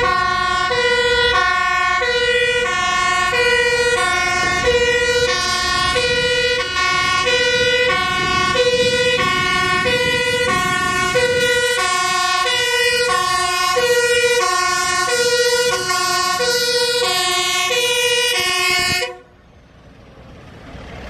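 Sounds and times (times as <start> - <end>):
two-tone fire truck siren: 0.0 - 19.4
truck engine and tyre noise: 0.0 - 21.0.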